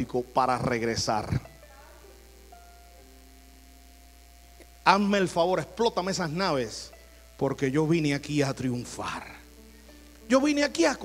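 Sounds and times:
man talking: 0.0s - 1.5s, 4.8s - 9.5s, 10.3s - 11.0s
low steady hum: 0.0s - 11.0s
soft sustained chord music: 0.0s - 11.0s.

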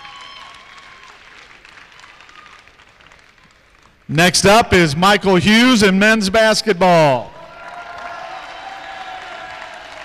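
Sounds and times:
audience applauding: 0.0s - 4.1s, 7.6s - 10.0s.

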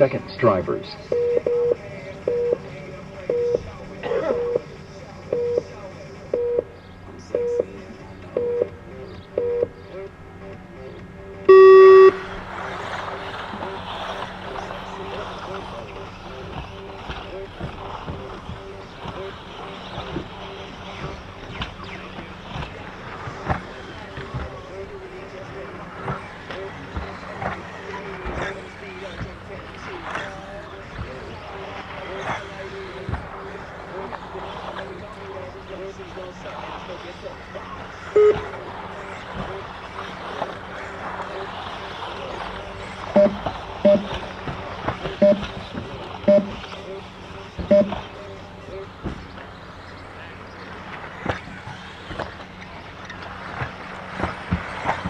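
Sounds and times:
timing system short beeps: 11.5s - 12.2s, 38.2s - 38.5s, 43.2s - 44.2s, 45.2s - 45.5s, 46.3s - 46.6s, 47.7s - 48.0s
long start tone: 11.5s - 12.4s, 43.2s - 44.2s.

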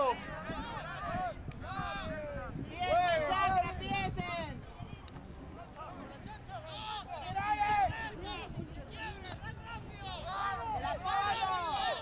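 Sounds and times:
people shouting: 0.0s - 4.0s, 6.6s - 12.0s.

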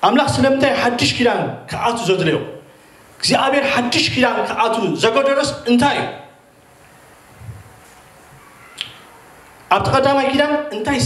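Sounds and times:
man speaking into a microphone: 0.0s - 6.3s, 9.7s - 11.0s.

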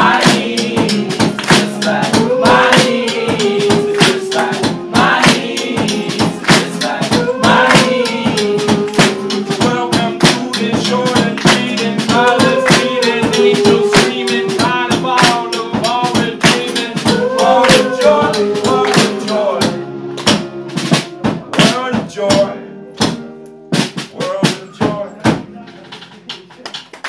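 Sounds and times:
hand percussion: 0.0s - 19.5s
voices singing: 0.0s - 22.6s
strummed guitars: 0.0s - 26.9s.

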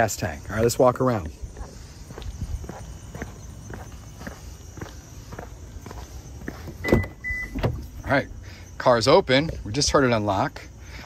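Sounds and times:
footsteps on asphalt: 0.4s - 7.9s.

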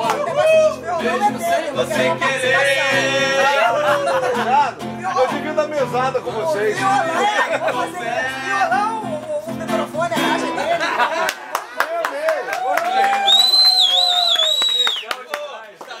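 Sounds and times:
people clapping: 0.0s - 0.5s, 11.0s - 16.0s
acoustic guitar strumming: 0.0s - 10.8s
people singing: 0.0s - 11.1s
high wavering whistle: 13.3s - 15.1s.

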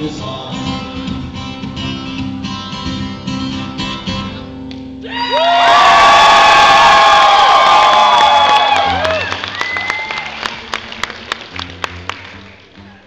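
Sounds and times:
audience cheering and whooping: 5.1s - 10.8s
applause: 5.4s - 12.8s.

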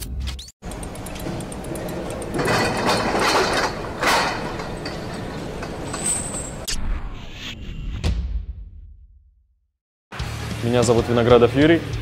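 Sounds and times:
mechanical rumble: 0.6s - 6.7s.

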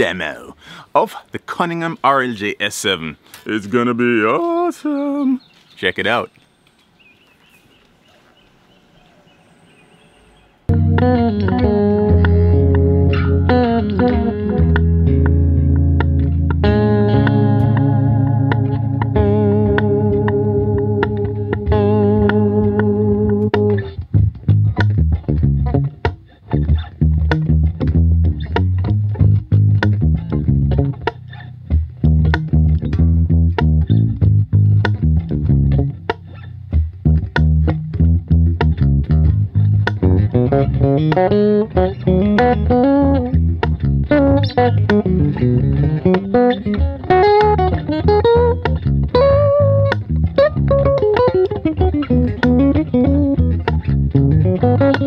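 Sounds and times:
electric bass playing: 10.6s - 55.0s.

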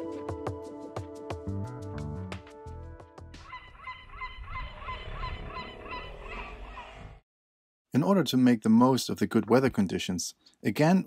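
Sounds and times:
bird rapid repeated calls: 3.4s - 7.2s.

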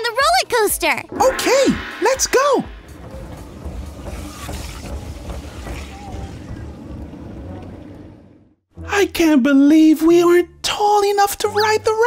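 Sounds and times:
wind rushing over microphone: 1.1s - 3.4s.

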